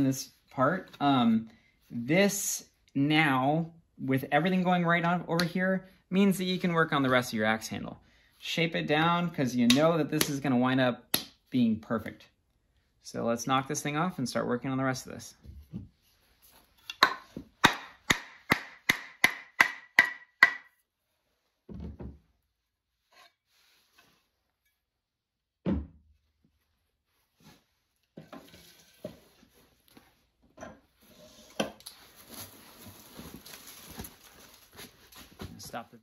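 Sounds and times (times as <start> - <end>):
wooden mallet knocking axe handle: 16.9 - 20.7.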